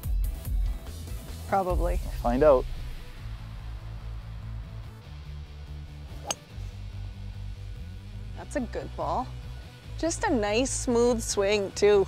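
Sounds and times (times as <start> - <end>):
background music with bass: 0.0 - 12.0
golf club striking ball: 6.2 - 6.6.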